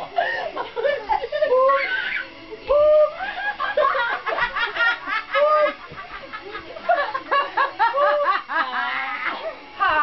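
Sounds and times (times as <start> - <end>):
women laughing: 0.0 - 10.0.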